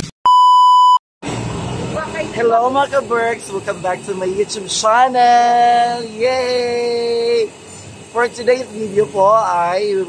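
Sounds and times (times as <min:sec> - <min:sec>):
high-pitched electronic beep: 0:00.3 - 0:01.0
low street background noise: 0:01.2 - 0:10.0.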